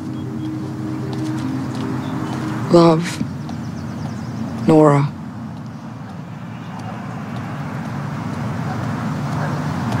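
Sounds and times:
distant road traffic rumble: 0:00.0 - 0:10.0.

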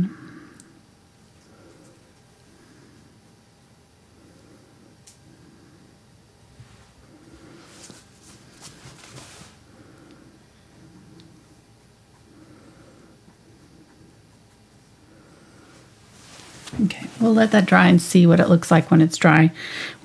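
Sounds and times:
paintbrush strokes on canvas: 0:06.5 - 0:09.7, 0:13.6 - 0:18.5.

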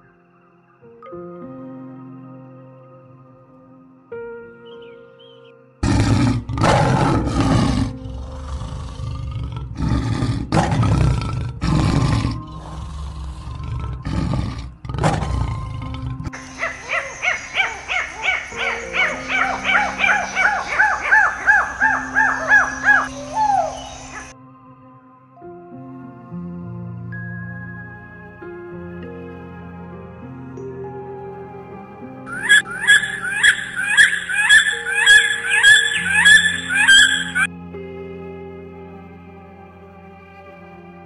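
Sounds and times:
soft background music: 0:00.0 - 0:41.0
lion roaring and grunting: 0:05.8 - 0:16.4
high downward-sweeping animal calls: 0:16.3 - 0:24.3, 0:32.3 - 0:37.5.

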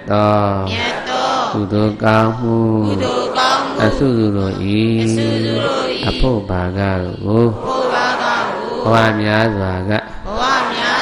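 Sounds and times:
man chanting: 0:00.0 - 0:08.0, 0:08.6 - 0:10.4.

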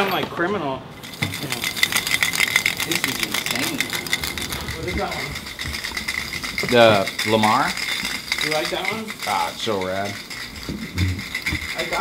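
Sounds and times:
spray paint can rattling: 0:01.0 - 0:12.0.

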